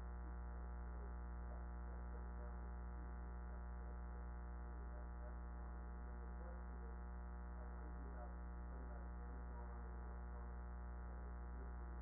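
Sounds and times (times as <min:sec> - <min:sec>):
low electrical mains hum: 0:00.0 - 0:12.0.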